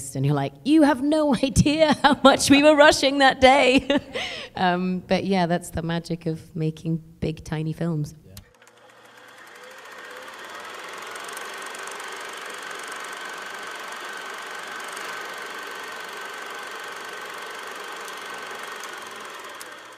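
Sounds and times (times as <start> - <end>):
rapid mechanical clatter: 8.5 - 19.9.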